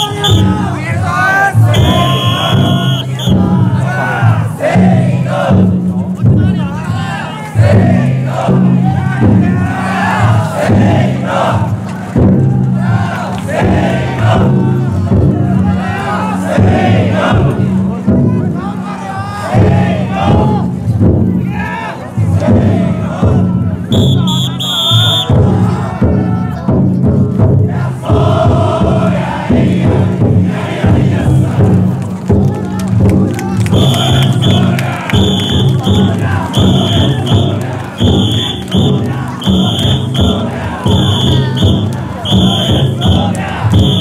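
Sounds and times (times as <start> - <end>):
big taiko drum beating: 0.0 - 44.0
crowd shouting and chanting: 0.0 - 44.0.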